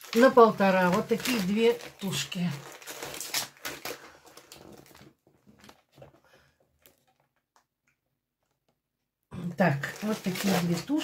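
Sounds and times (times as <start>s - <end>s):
plastic bags rustling: 0.0s - 7.3s, 9.7s - 11.0s.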